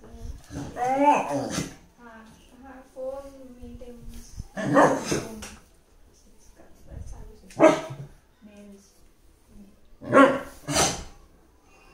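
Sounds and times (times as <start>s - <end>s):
dog grumbling: 0.5s - 1.8s
dog barking: 4.6s - 5.2s, 7.6s - 8.1s, 10.0s - 11.2s.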